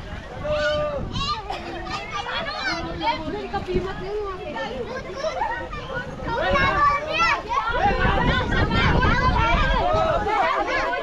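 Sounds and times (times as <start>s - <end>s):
children shouting while playing: 0.2s - 3.4s, 4.6s - 11.0s.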